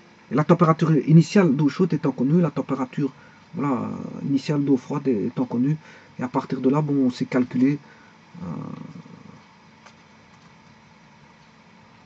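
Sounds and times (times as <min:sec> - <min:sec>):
man's drawn-out hesitation: 0:00.3 - 0:09.5.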